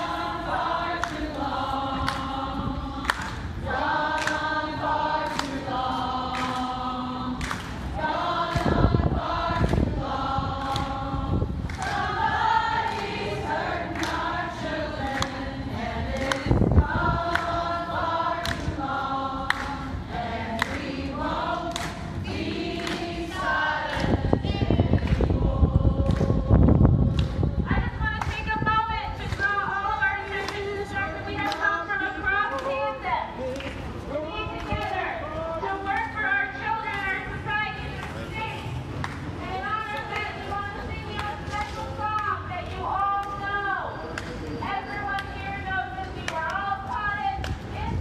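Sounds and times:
group singing slow song: 0.0 - 27.7
low microphone rumbles: 20.1 - 29.8.

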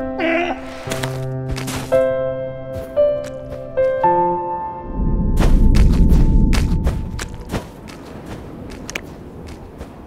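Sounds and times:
low rumble: 4.5 - 7.5.

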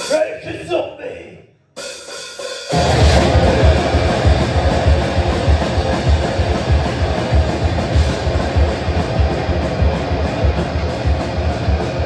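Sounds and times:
fast driving drum beat: 0.0 - 0.7, 1.8 - 12.0
distorted electric guitars and bass: 2.7 - 12.0.

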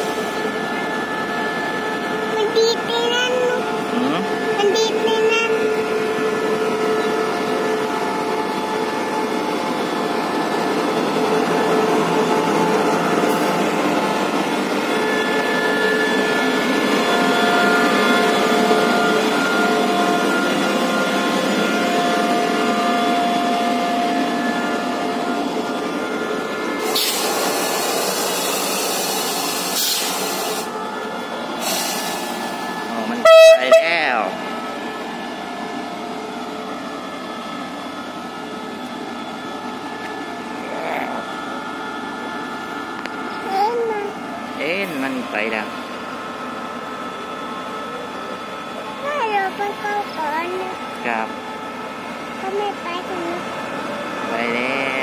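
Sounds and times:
locomotive engine humming: 0.0 - 55.0
locomotive horn blast: 33.1 - 34.3.

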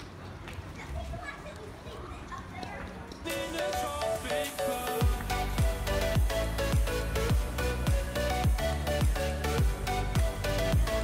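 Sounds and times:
people and children chattering: 0.5 - 3.8.

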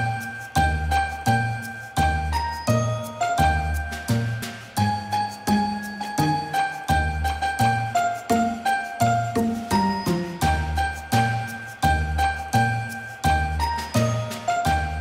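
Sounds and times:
upbeat instrumental music: 0.0 - 15.0.

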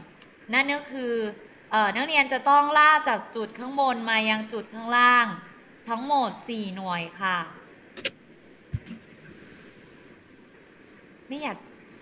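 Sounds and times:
low steady hiss: 0.0 - 12.0
sharp click: 8.0 - 8.2.

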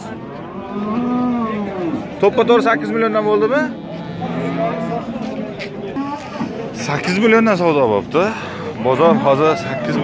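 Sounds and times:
bull mooing: 0.4 - 6.5.

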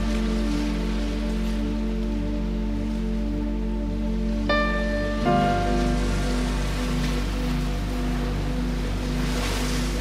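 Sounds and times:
calm background music: 0.0 - 10.0
ocean waves: 0.0 - 10.0.

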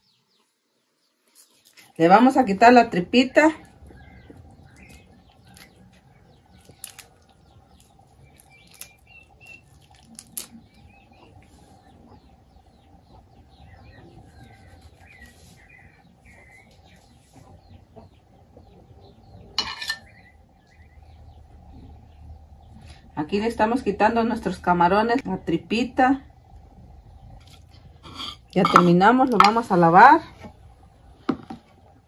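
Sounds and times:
small birds chirping: 0.0 - 32.0
knife scraping shrimp: 27.4 - 28.9.

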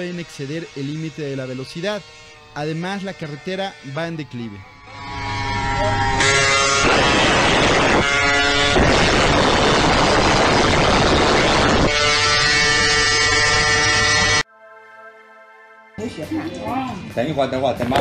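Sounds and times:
small gasoline engine buzzing: 0.0 - 14.4
wind rushing over microphone: 6.7 - 12.8.

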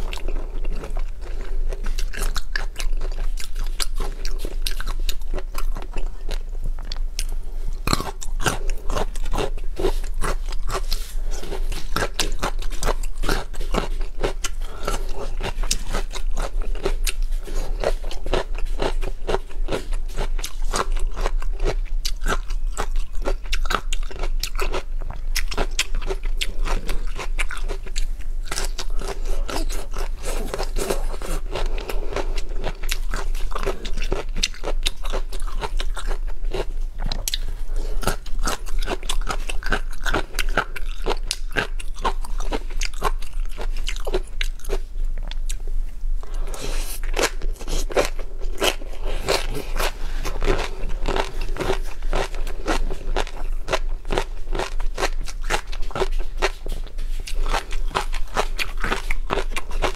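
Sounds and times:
chewing crunchy food: 0.0 - 59.9.

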